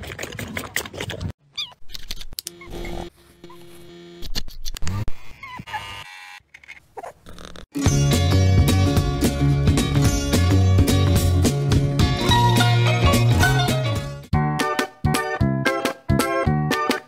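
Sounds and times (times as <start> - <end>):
loud music: 7.8 - 15.2.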